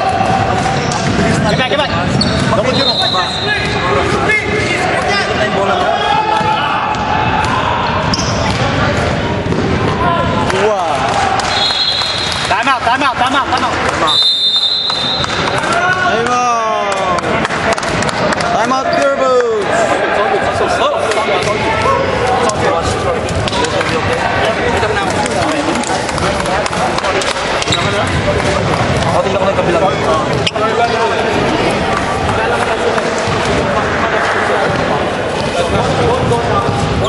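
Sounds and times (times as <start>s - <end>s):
voices echoing in a hall: 0.0s - 37.0s
voices talking: 0.2s - 17.3s
sneakers squeaking: 0.4s - 10.4s, 11.4s - 12.5s, 14.0s - 15.8s, 27.4s - 37.0s
basketball bouncing: 33.0s - 33.7s.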